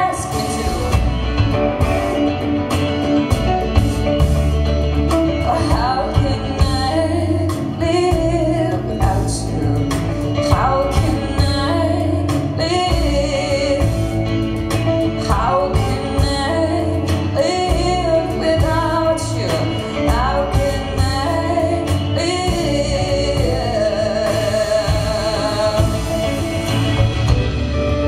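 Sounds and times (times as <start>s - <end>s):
woman singing: 0.0s - 2.3s, 5.2s - 26.9s
acoustic guitar: 0.0s - 28.0s
low bass line: 0.0s - 28.0s.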